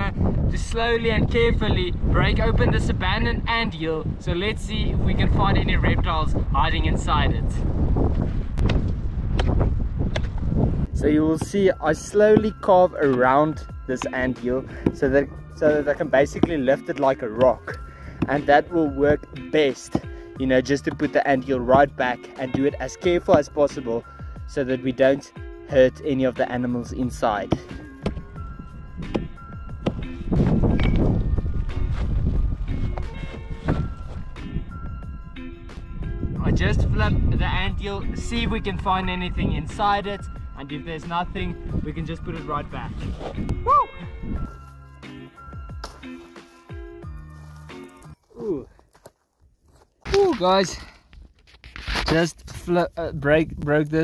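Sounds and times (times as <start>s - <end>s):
wind buffeting microphone: 0.0s - 12.1s, 28.1s - 44.6s, 52.4s - 54.0s
background music: 10.9s - 48.6s
hammer knocking hard earth: 11.3s - 15.1s, 16.2s - 16.8s, 20.8s - 23.6s, 27.4s - 28.3s, 29.0s - 31.2s
rough scraping: 42.8s - 43.5s, 50.0s - 54.0s.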